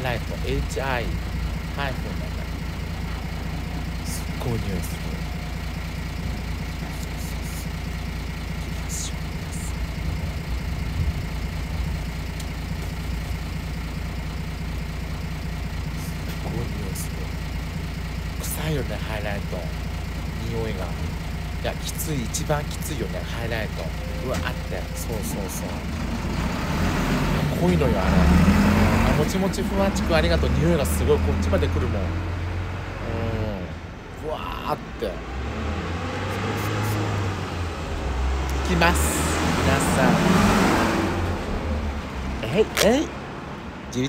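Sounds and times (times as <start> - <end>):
truck engine idling: 0.0 - 44.0.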